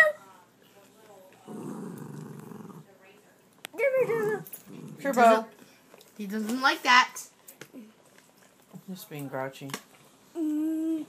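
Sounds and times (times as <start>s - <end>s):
small dog growling: 1.4s - 2.9s, 3.8s - 5.4s.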